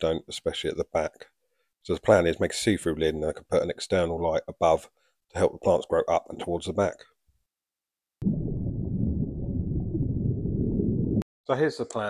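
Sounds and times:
steady low rumble: 0:08.2 - 0:11.2.

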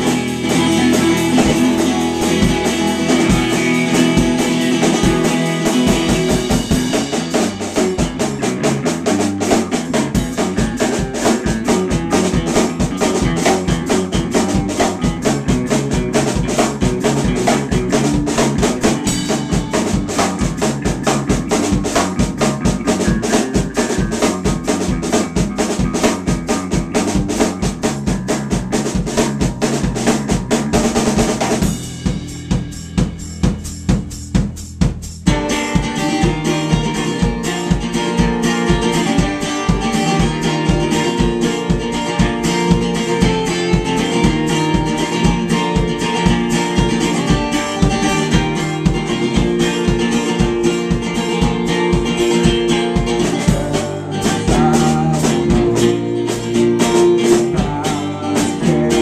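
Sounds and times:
acoustic guitar: 0:00.0 - 0:33.8, 0:35.3 - 0:59.0
drum kit: 0:00.0 - 0:59.0
electric bass: 0:00.0 - 0:59.0.

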